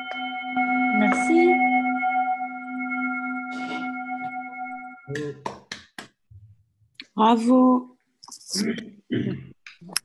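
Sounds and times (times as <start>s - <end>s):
steady ringing tone: 0.0s - 5.1s.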